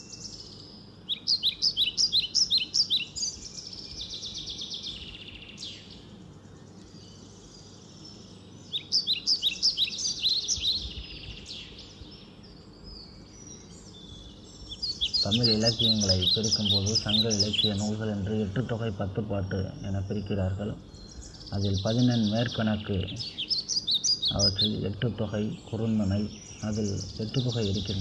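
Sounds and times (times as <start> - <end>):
birds singing: 0.0 - 28.0.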